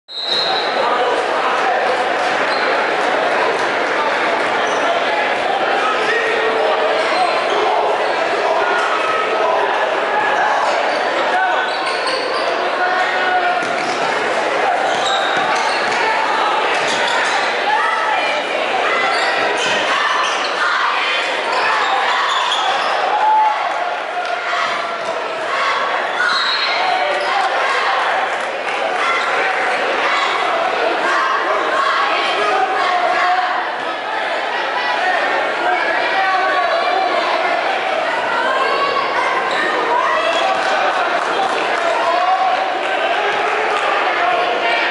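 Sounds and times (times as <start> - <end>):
crowd chatter and shouts: 0.1 - 44.9.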